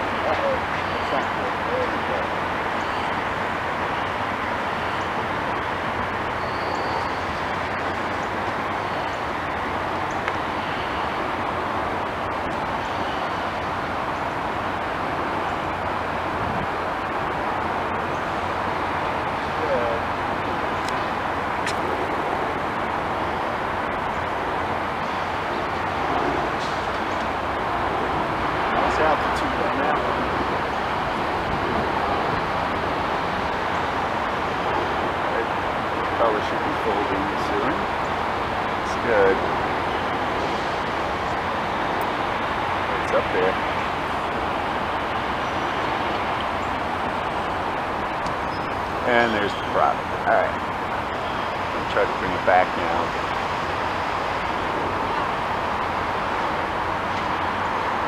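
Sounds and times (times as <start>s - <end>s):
traffic hum: 0.0s - 58.0s.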